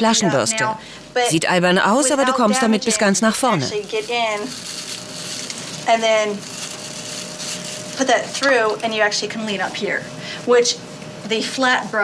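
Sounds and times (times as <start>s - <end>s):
woman speaking: 0.0s - 4.5s, 5.8s - 6.4s, 8.0s - 12.0s.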